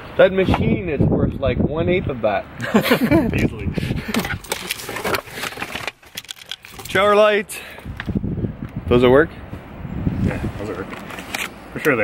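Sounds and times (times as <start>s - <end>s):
person laughing: 2.6s - 4.4s
camera rustling against clothing: 3.4s - 7.2s, 9.5s - 12.0s.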